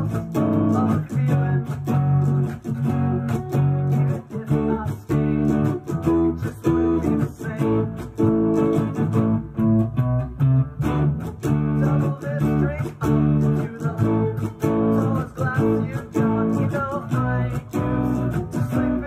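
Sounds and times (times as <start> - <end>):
person singing: 0.0 - 9.6, 11.0 - 19.0
electric guitar strumming chords: 0.0 - 19.0.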